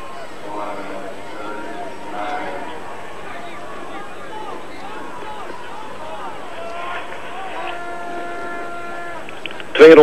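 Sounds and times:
crowd noise: 0:00.0 - 0:10.0
faint distant voices: 0:00.0 - 0:10.0.

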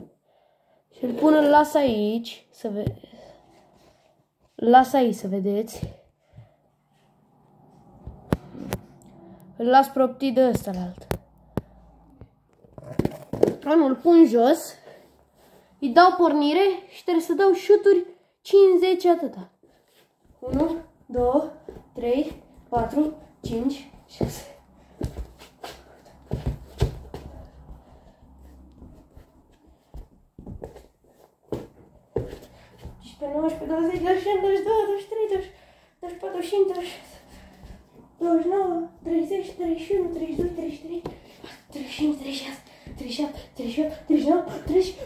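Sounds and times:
football thudding on wooden floor: 0:12.7 - 0:13.7, 0:26.3 - 0:27.5
shuffling footsteps: 0:19.6 - 0:45.0.

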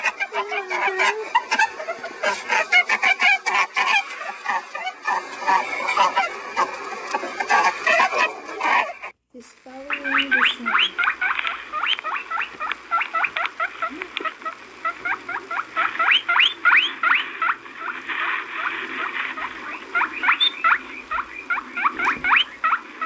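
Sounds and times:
rabbit high chirps: 0:09.8 - 0:23.0.

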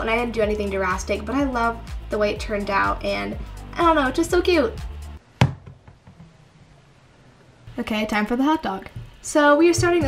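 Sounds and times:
knock on wooden tabletop: 0:05.4 - 0:06.4.

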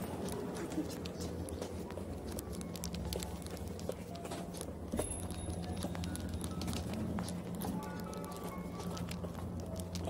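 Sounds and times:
footsteps on tiled floor: 0:00.0 - 0:10.0
steady low hum: 0:00.0 - 0:10.0.

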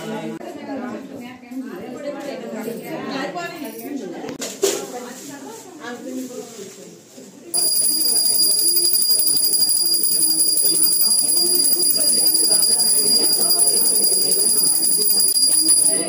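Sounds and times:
hand bell ringing rapidly: 0:07.6 - 0:16.0.

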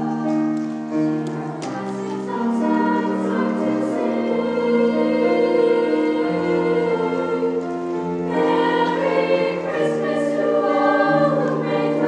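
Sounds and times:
girls' choir singing: 0:00.0 - 0:12.0.

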